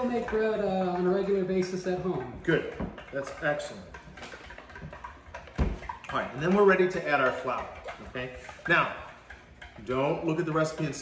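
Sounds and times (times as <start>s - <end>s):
spoon stirring batter in glass bowl: 0.0s - 11.0s.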